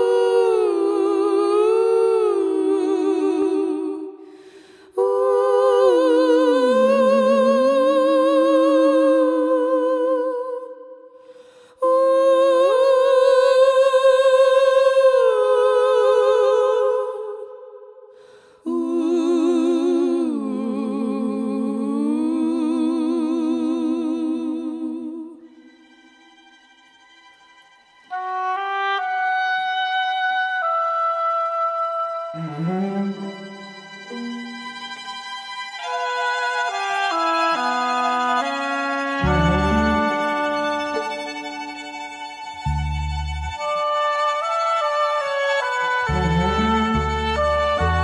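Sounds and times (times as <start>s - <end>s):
voices singing in harmony: 0.0s - 11.2s, 11.8s - 25.6s.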